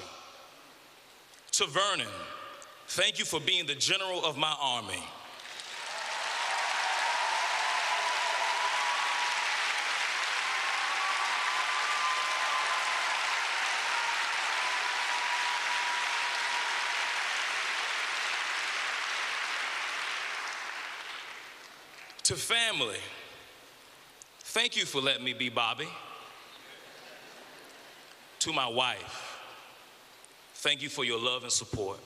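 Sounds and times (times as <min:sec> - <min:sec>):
audience applauding: 0:05.4 - 0:22.2.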